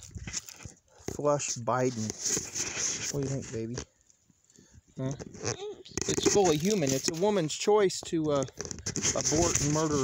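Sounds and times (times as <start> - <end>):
toddler vocalizing: 5.5 - 6.0.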